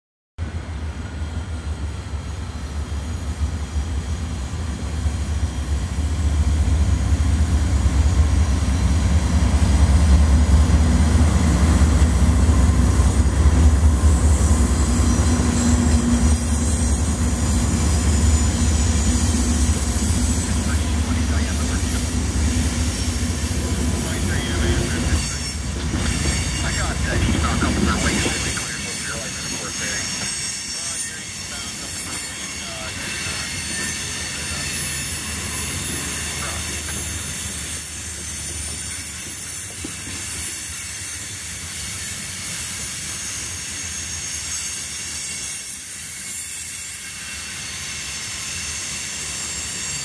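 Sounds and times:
diesel locomotive engine rumble: 0.4 - 50.0
train wheels clicking over rail joints: 24.4 - 50.0.

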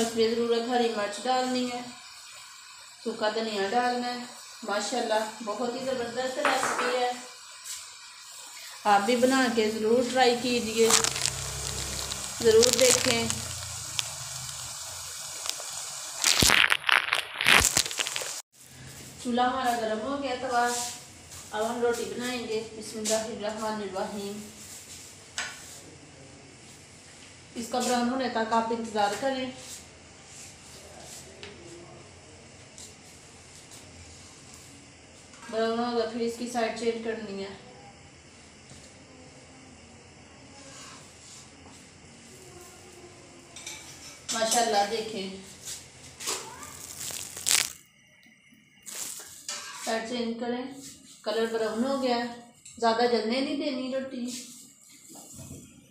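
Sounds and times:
gas stove burner hissing: 0.0 - 16.4, 18.1 - 55.3
curry sizzling in a pan: 0.0 - 18.6, 43.4 - 50.1
loud irregular crackling: 10.4 - 18.4, 46.4 - 47.8.

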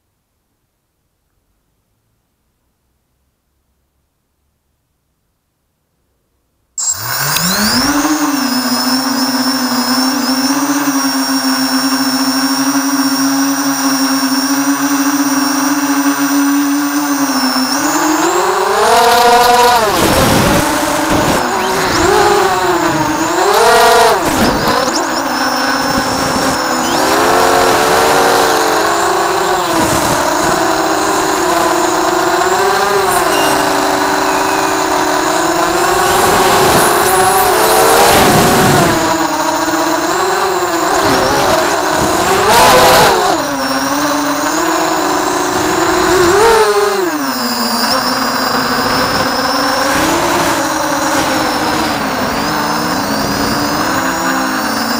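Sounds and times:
quadcopter motors whining: 6.8 - 54.9.

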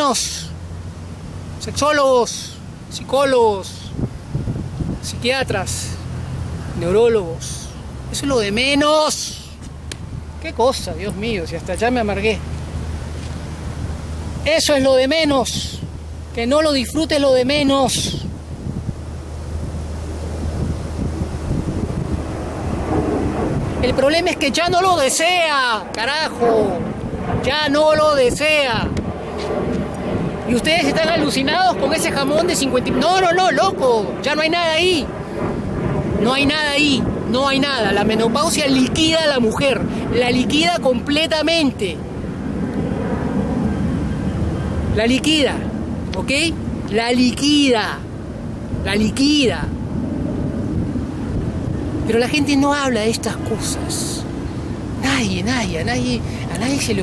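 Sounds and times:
steady low hum: 0.0 - 47.0
low outdoor background rumble: 0.0 - 57.0
wind buffeting microphone: 0.0 - 57.0.

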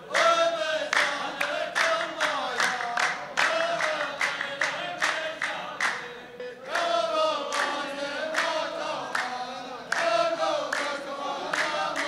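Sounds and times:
men singing in unison: 0.0 - 12.0
steady hand-clapping: 0.0 - 12.0.

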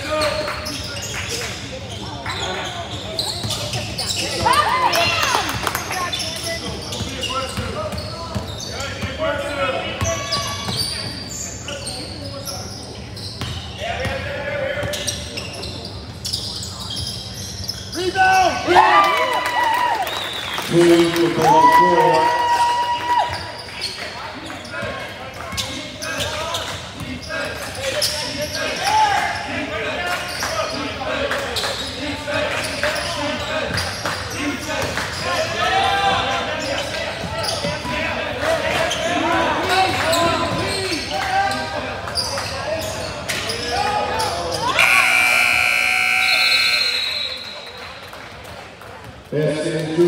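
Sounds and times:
players and crowd shouting: 21.3 - 23.4, 43.5 - 47.6
scoreboard buzzer: 44.7 - 47.6.

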